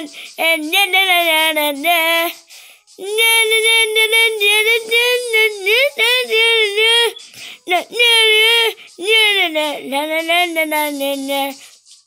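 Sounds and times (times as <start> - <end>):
child singing na na: 0.0 - 2.4, 3.0 - 11.7.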